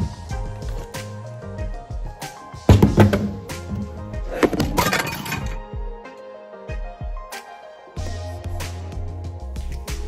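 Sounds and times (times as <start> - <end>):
background music: 0.0 - 10.0
objects clattering and clinking: 2.7 - 5.6.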